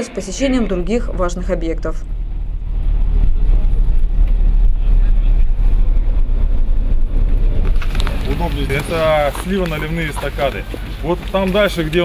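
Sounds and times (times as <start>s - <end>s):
engine and road noise: 0.0s - 12.0s.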